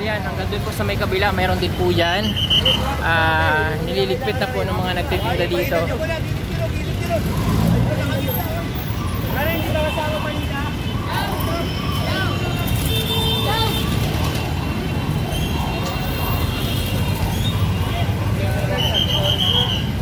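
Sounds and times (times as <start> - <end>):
people talking: 0.0 - 14.0
road traffic rumble: 0.0 - 20.0.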